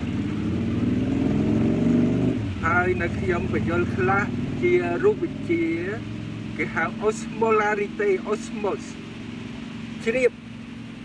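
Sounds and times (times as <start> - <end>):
motorcycle engine passing: 0.0 - 11.0.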